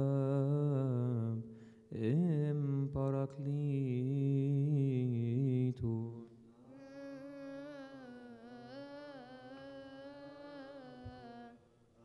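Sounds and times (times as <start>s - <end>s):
man chanting a hymn: 0.0s - 6.3s.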